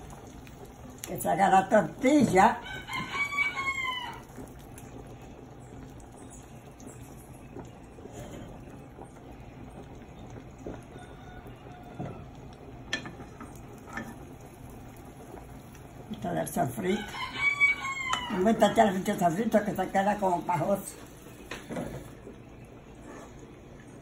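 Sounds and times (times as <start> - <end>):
eggs sizzling in a frying pan: 0.0 - 24.0.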